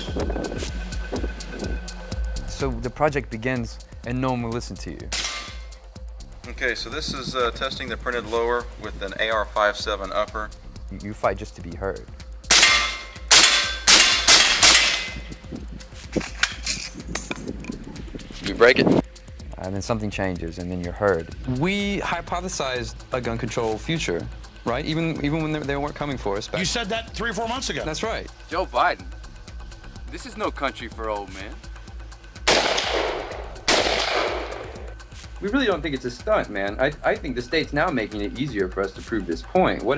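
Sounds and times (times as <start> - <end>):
rifle shots: 32.5 - 34.8
echoing gunshots: 32.5 - 34.9.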